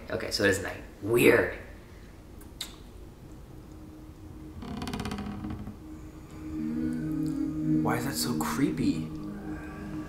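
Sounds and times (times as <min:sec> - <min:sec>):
low steady drone: 0:01.6 - 0:10.0
door creaking slowly: 0:04.3 - 0:07.4.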